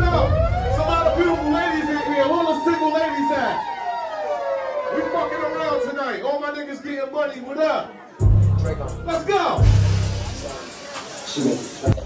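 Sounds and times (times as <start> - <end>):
siren tone sliding down: 0.0 - 6.0.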